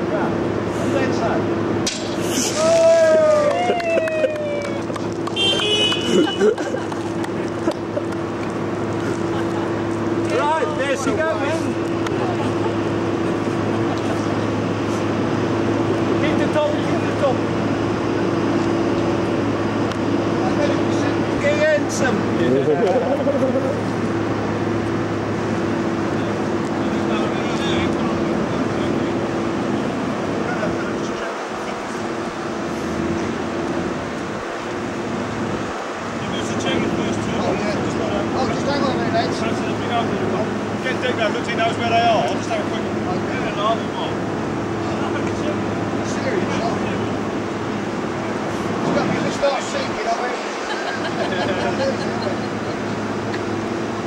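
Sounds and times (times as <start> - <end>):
crane engine drone: 0.0 - 54.0.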